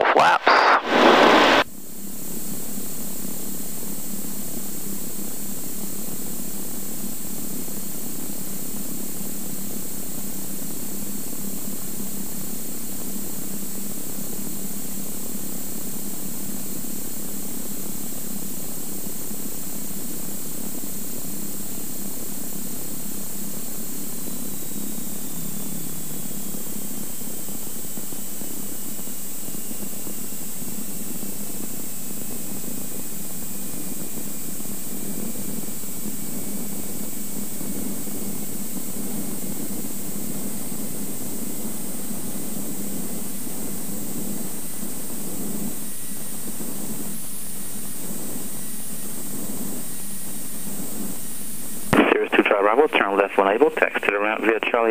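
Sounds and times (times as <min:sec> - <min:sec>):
faint whine: 0:00.0 - 0:01.6, 0:21.6 - 0:30.0, 0:51.7 - 0:54.9
loud burst of noise: 0:00.0 - 0:01.6, 0:51.9 - 0:54.8
propeller engine droning: 0:24.0 - 0:28.2.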